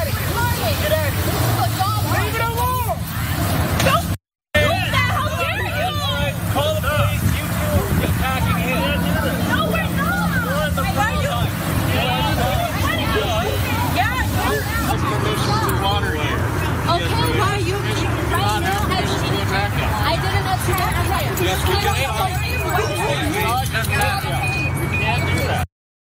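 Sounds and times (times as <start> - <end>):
low engine hum: 0.0 - 25.3
people arguing: 0.0 - 25.6.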